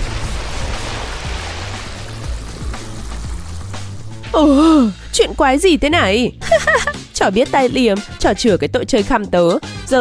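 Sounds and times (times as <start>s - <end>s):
background music with bass: 0.0s - 10.0s.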